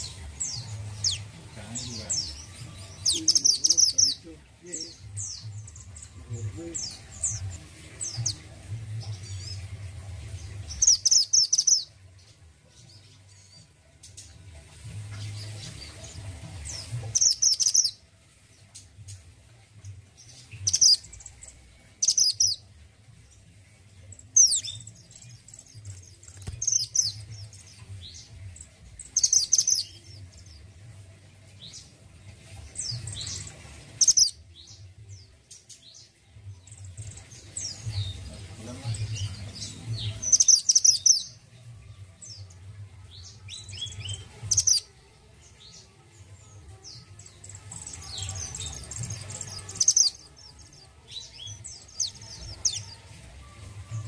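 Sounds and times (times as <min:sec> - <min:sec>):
bird chirping and whistling: 0:22.0 - 0:22.6.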